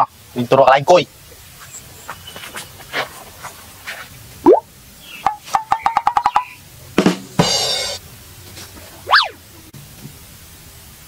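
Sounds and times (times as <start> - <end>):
cartoon rising whoop: 9.1 - 9.4.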